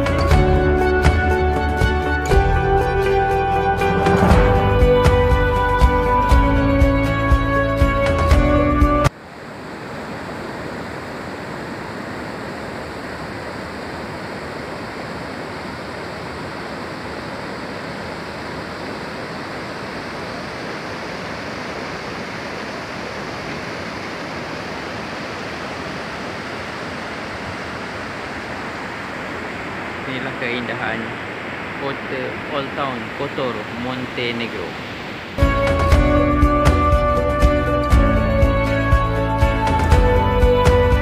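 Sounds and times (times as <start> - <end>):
music: 0.0 - 9.1, 35.4 - 41.0
river water pouring over weir: 9.1 - 36.0.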